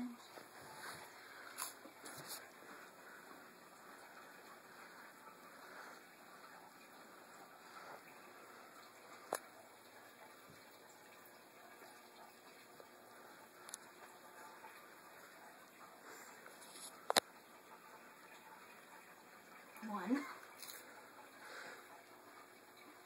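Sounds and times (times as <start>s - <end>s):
faint chewing of crackers: 1.3s - 2.5s, 20.4s - 20.9s.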